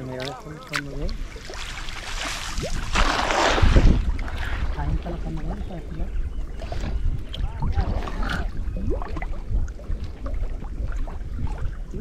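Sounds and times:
water lapping and sloshing: 0.0s - 12.0s
watery plinks: 0.0s - 12.0s
wind buffeting: 0.4s - 12.0s.

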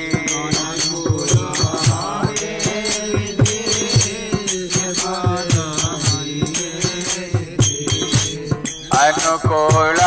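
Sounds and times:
drum beat: 0.0s - 10.0s
group singing: 0.0s - 10.0s
hand cymbals: 0.0s - 10.0s.

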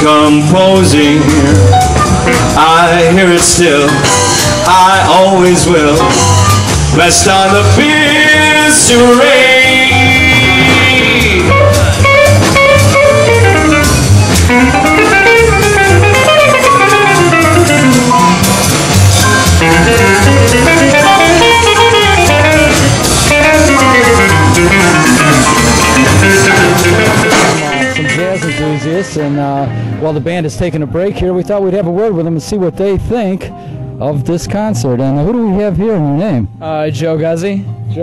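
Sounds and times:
drum kit: 0.0s - 33.5s
upright bass: 0.0s - 38.0s
jazz guitar solo: 0.2s - 5.0s, 8.8s - 30.0s
held high note: 10.0s - 28.9s.

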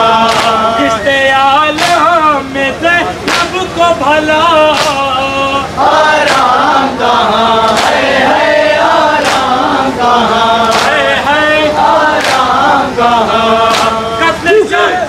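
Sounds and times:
men chanting: 0.0s - 15.0s
chest-beating slaps: 10.6s - 11.0s, 12.2s - 12.6s, 13.7s - 14.0s.

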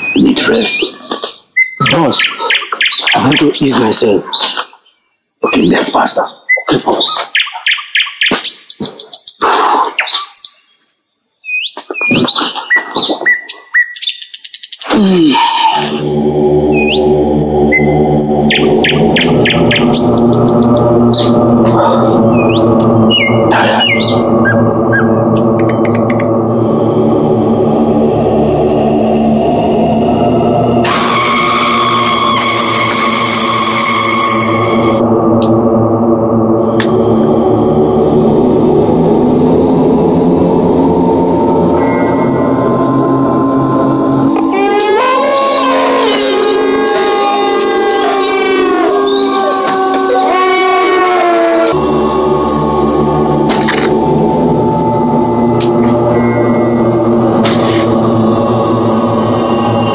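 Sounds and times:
birds chirping and trilling: 0.0s - 35.9s, 38.4s - 59.9s
brighter higher music layer: 15.3s - 59.9s
droning music chord: 15.8s - 59.9s.

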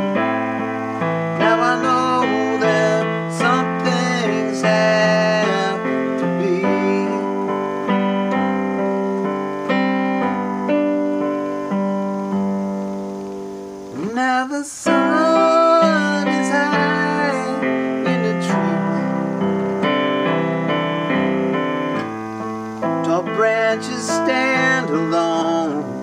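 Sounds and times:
piano chords: 0.0s - 26.0s
wordless vocal with vibrato: 1.4s - 7.6s, 13.9s - 19.4s, 23.0s - 26.0s.

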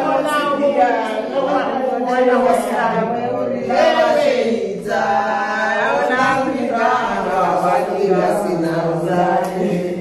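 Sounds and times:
group of voices singing: 0.0s - 10.0s.

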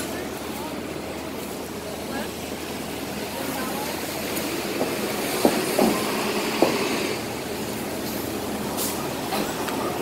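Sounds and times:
bus and truck engines: 0.0s - 10.0s.

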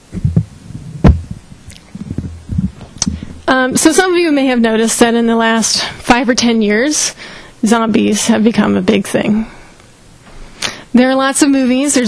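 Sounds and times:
microphone handling thumps: 0.0s - 3.5s.

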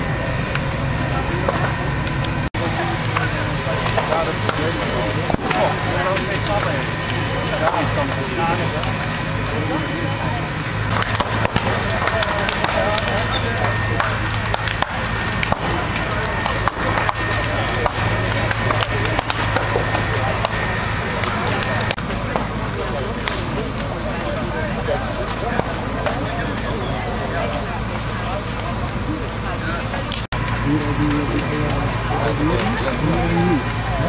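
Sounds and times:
truck engine humming: 0.0s - 34.0s
sharp cracks: 1.4s - 29.0s.

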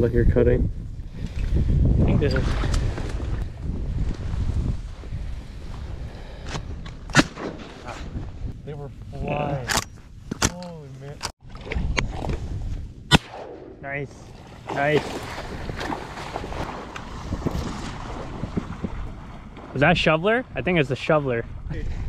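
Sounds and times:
wind noise: 0.0s - 22.0s
shotgun shots: 7.1s - 7.8s, 13.1s - 13.8s.

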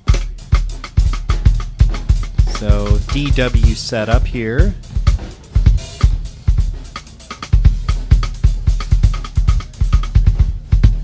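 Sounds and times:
drum kit solo: 0.0s - 11.0s
quick bass drum strokes: 0.0s - 11.0s.

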